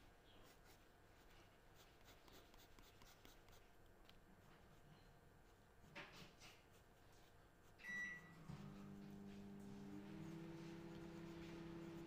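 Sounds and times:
low electrical hum: 0.0 - 12.0
short electronic beep: 7.8 - 8.4.

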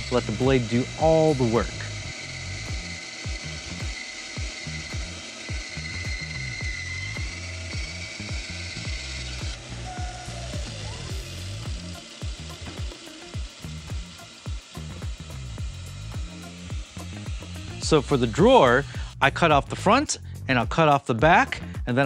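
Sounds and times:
bandsaw cutting plywood: 0.0 - 20.1.

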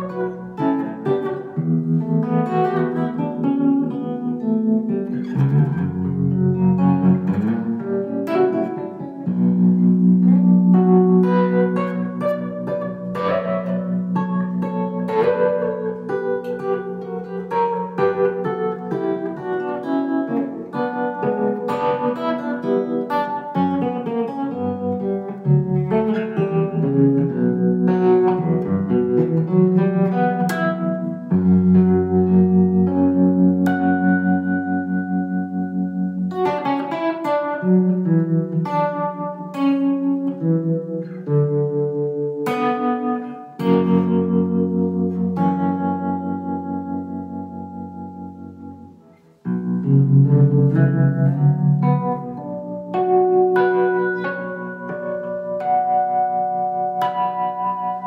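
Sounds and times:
solo baritone electric guitar: 0.0 - 58.0.

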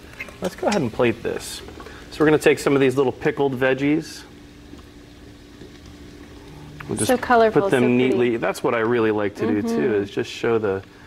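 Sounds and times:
faint steady hum: 0.0 - 11.0
man speaking: 6.8 - 10.8.

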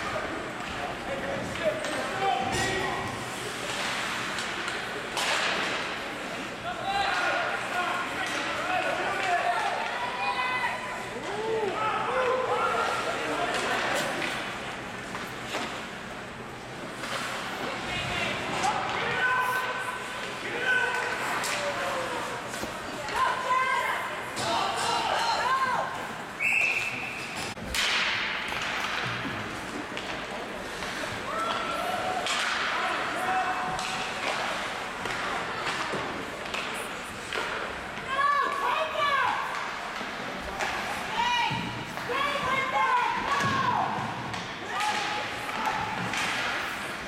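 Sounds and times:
sharp crack in ice rink: 3.4 - 6.0, 27.4 - 37.8, 44.3 - 47.0
whistle blowing: 26.4 - 27.2.

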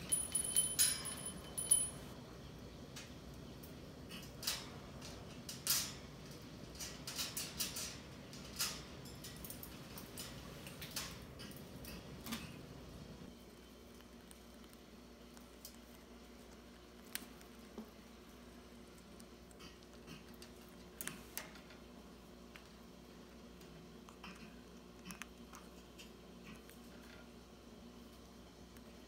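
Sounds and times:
small metal bell ringing: 0.0 - 2.2
steady low hum: 0.0 - 29.0.

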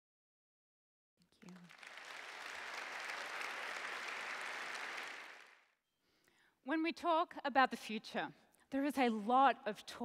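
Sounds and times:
audience applauding: 1.4 - 5.7.

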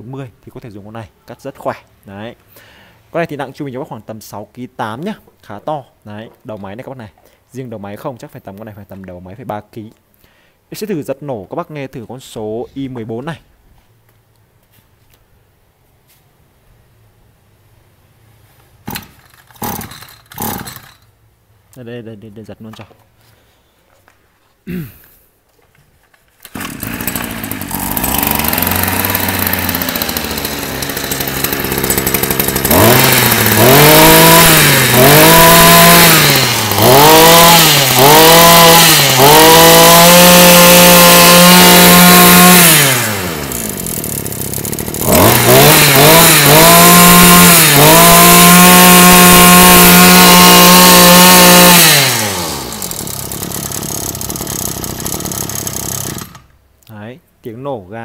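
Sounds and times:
brush cutter engine revving: 18.9 - 21.1, 26.4 - 56.6.

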